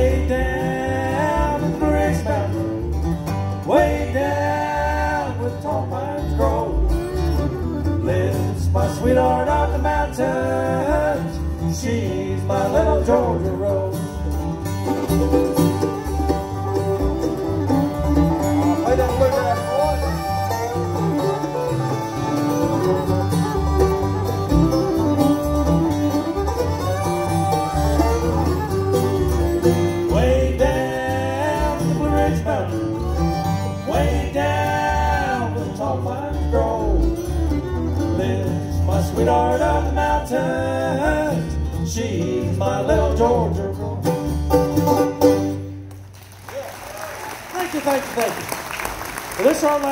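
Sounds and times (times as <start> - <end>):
fiddle lead with sliding notes: 0.0 - 8.5, 9.7 - 41.8
banjo: 0.0 - 45.9
upright bass: 0.0 - 45.9
acoustic guitar rhythm: 0.0 - 46.1
mandolin: 0.0 - 46.1.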